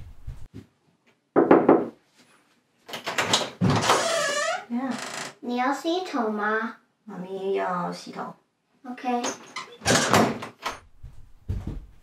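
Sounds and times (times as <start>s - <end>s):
soft low thuds: 0.0s - 0.6s, 10.9s - 12.0s
door knock: 1.4s - 2.0s.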